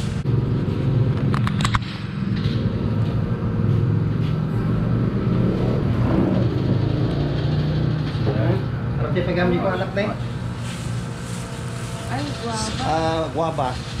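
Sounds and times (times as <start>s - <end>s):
engine droning: 0.0s - 14.0s.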